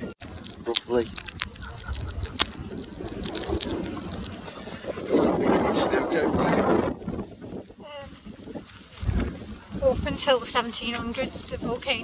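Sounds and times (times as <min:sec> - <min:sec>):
wind buffeting microphone: 0:00.0 - 0:12.0
sharp ticks and taps: 0:00.2 - 0:04.4.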